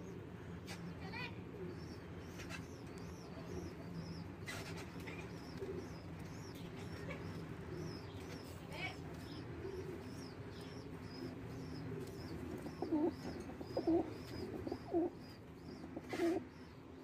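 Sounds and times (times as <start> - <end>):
pigeons cooing: 0.0 - 17.0.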